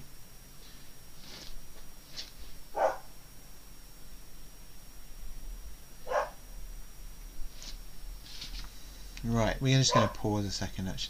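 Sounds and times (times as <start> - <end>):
dog barking: 2.8 - 3.1, 6.0 - 6.4, 9.9 - 10.2.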